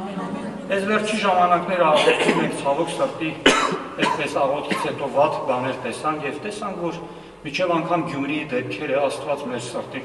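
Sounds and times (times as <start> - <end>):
man speaking: 0.6 - 10.0
man coughing: 1.9 - 2.6, 3.4 - 5.1.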